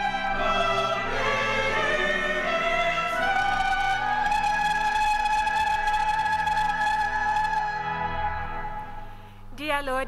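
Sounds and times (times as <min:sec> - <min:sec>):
hymn chord by voices and instruments: 0:00.0 - 0:09.4.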